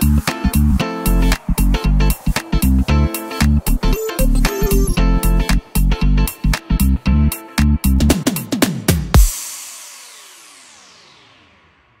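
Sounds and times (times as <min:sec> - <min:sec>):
electronic music reverberant wash: 0:00.0 - 0:06.6, 0:09.2 - 0:12.0.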